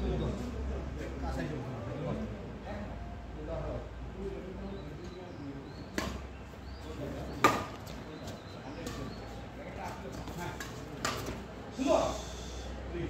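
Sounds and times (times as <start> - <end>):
rackets hitting shuttlecock: 5.9 - 6.3, 7.3 - 8.0, 8.8 - 9.1, 9.9 - 11.5.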